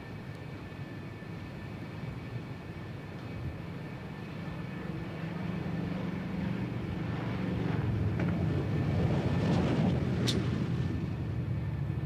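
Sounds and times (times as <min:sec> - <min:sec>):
prop plane engine rumble: 0:00.0 - 0:12.0
wind noise: 0:05.1 - 0:12.0.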